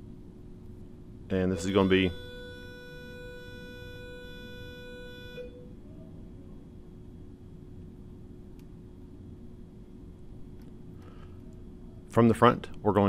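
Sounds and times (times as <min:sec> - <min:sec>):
low hum and hiss: 0:00.0 - 0:13.0
steady pitched tone: 0:01.3 - 0:06.1.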